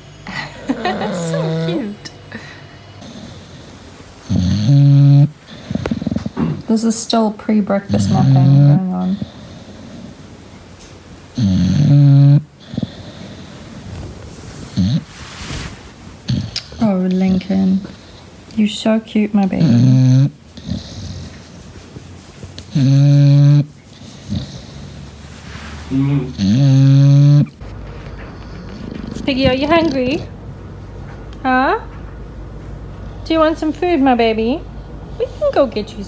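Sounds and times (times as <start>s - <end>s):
dog snoring: 0.0s - 2.2s, 3.0s - 6.9s, 7.8s - 10.3s, 11.3s - 15.2s, 16.2s - 18.2s, 19.5s - 21.6s, 22.6s - 25.2s, 25.8s - 27.6s, 28.3s - 30.3s.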